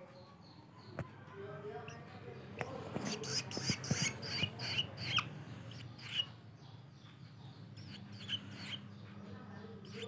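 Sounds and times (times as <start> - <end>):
nestlings chirping: 1.7 - 10.0.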